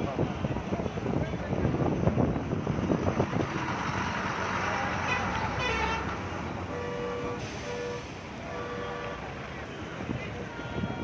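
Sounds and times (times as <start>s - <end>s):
wind noise: 0.0s - 6.2s, 9.4s - 11.0s
traffic rushing: 0.0s - 11.0s
vehicle horn honks: 6.7s - 9.3s, 10.5s - 11.0s.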